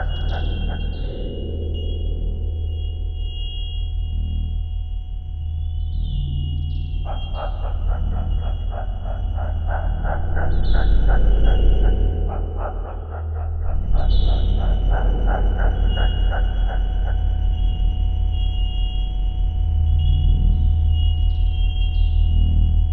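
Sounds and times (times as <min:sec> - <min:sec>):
deep steady drone: 0:00.0 - 0:22.9
rapid pulsing beeps: 0:00.0 - 0:22.9.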